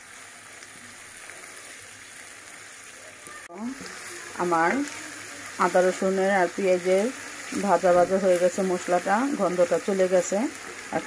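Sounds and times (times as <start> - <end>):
onions sizzling in hot oil: 0.0 - 11.0.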